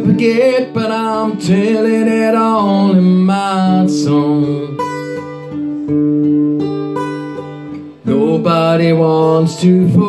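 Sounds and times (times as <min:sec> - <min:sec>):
acoustic guitar chords ringing: 0:00.0 - 0:10.0.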